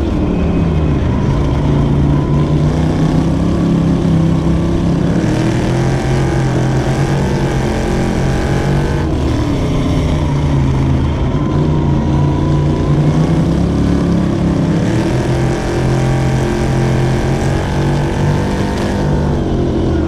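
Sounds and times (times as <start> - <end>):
other race cars passing: 0.0 - 20.0
race car engine running hard: 0.0 - 20.0.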